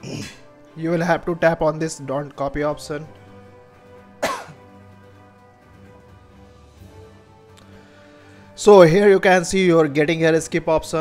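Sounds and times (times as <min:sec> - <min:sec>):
man coughing: 0:00.0 - 0:00.5, 0:04.2 - 0:04.7
soft music with held tones: 0:00.0 - 0:11.0.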